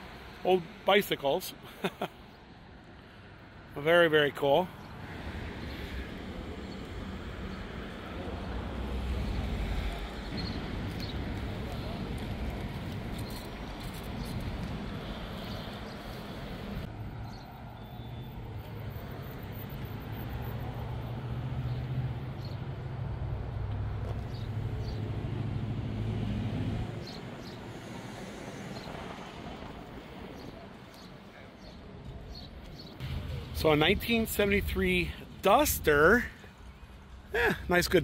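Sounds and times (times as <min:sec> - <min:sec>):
outdoor traffic noise: 0:00.0 - 0:38.0.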